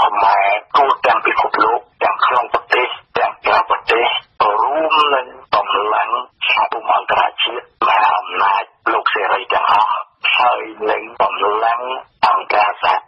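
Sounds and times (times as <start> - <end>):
radio news reader talking: 0.0 - 13.0.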